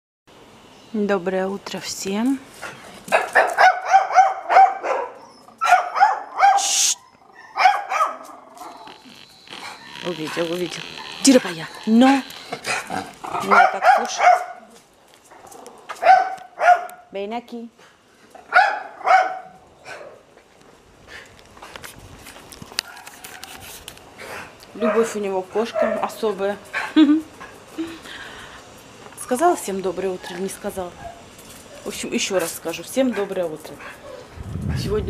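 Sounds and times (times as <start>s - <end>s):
dog barking: 3.1s - 6.8s, 7.4s - 8.7s, 13.4s - 14.7s, 16.0s - 17.1s, 18.5s - 20.2s, 24.8s - 26.2s
small dog yapping: 3.1s - 8.9s.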